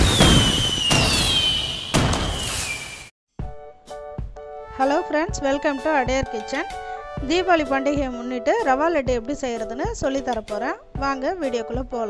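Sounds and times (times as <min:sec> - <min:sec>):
descending firework whistle: 0:00.0 - 0:03.1
firework bangs: 0:00.0 - 0:03.1.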